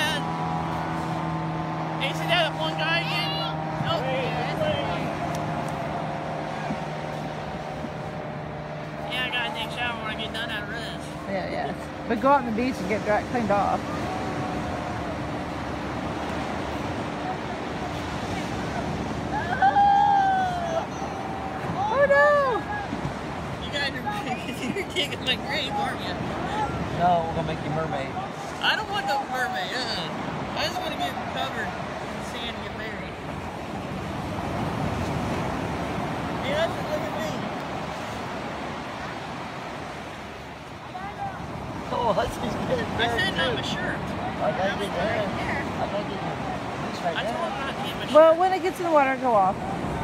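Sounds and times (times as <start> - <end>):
beach surf rushing: 0.0 - 50.0.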